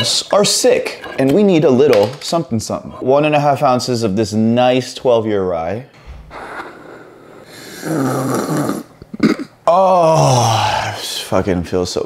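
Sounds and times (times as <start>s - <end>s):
man slurping hot drink: 6.3s - 9.4s
man humming mmm: 7.5s - 11.0s.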